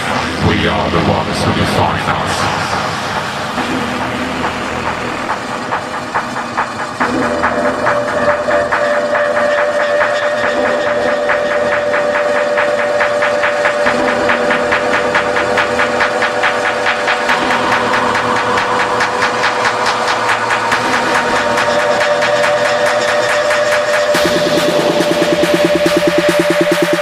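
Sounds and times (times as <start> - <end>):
fast-pulsing noisy synth: 0.0 - 27.0
held synth drone: 0.0 - 27.0
techno track: 0.0 - 27.0.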